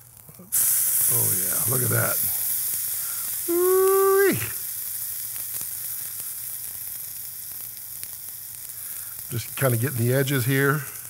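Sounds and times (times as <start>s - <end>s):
steak sizzling in a pan: 0.0s - 11.0s.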